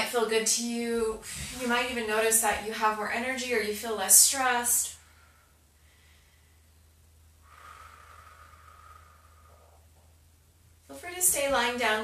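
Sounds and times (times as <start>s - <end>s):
low steady room hum: 0.0s - 12.0s
faint slow breath: 5.0s - 6.8s, 7.4s - 10.1s.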